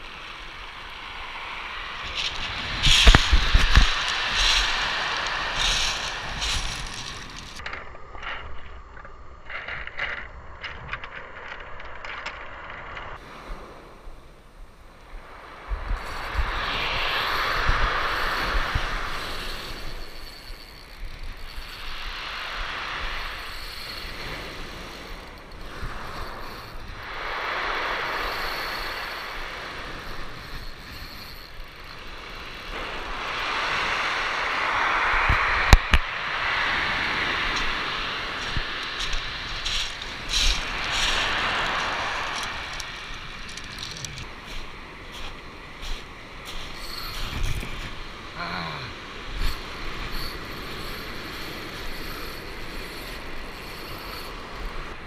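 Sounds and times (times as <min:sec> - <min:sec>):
surf breaking on pebble beach: 0:00.0 - 0:07.6, 0:15.2 - 0:55.0
wind rumble on microphone: 0:00.0 - 0:55.0.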